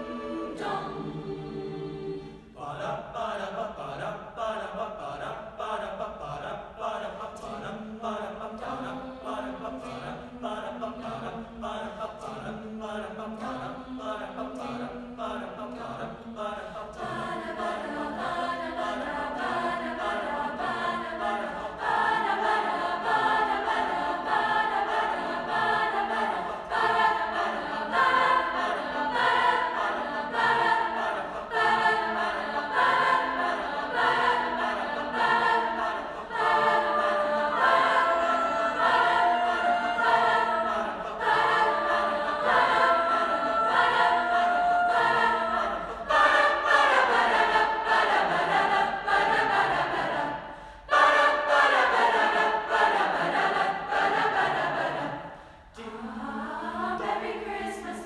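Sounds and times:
chorus singing: 0:00.0 - 0:58.0.

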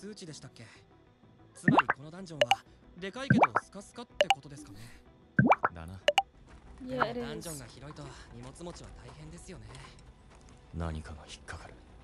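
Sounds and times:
water drops plopping: 0:01.7 - 0:02.6, 0:03.3 - 0:03.6, 0:05.4 - 0:06.2
background music: 0:05.4 - 0:06.2
faint dialogue: 0:06.8 - 0:07.8.

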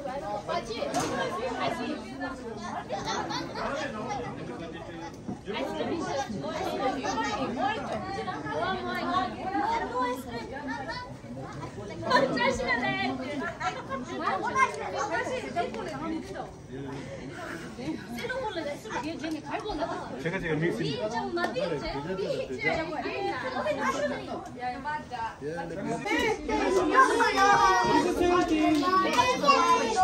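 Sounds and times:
group of people chatting: 0:00.0 - 0:30.0.

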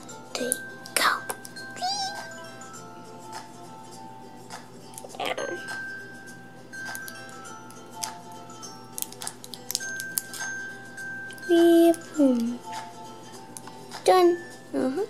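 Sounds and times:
background music with held notes: 0:00.0 - 0:15.0.

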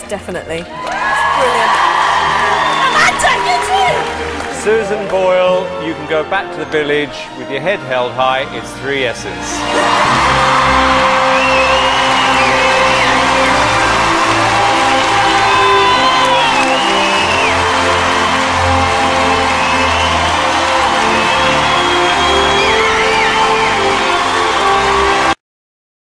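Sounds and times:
audience applauding and cheering: 0:00.0 - 0:07.2, 0:07.9 - 0:25.4
show music with held chords: 0:09.5 - 0:25.3.

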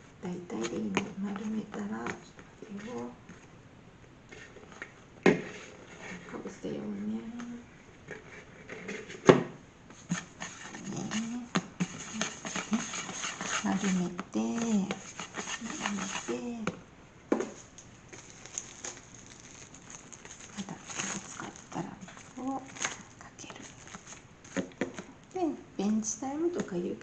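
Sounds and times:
hands tapping dough and plastic: 0:24.5 - 0:25.1.

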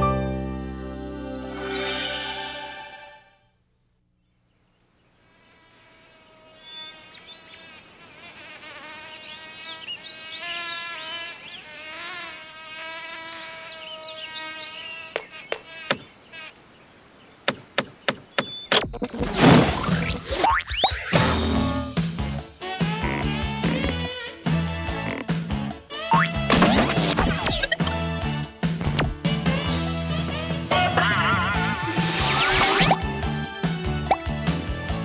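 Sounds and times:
cartoon insect buzzing: 0:05.2 - 0:16.6, 0:22.6 - 0:28.0, 0:28.8 - 0:29.3, 0:31.8 - 0:33.2.

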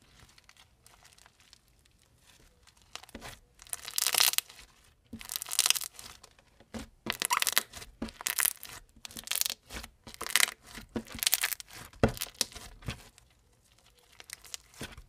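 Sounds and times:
slime crunching and crackling: 0:00.0 - 0:15.0.

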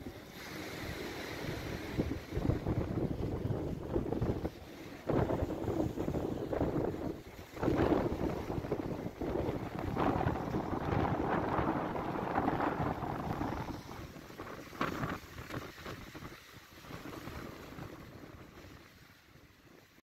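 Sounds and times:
wind buffeting microphone: 0:00.0 - 0:19.5
waves on shore: 0:00.0 - 0:20.0.

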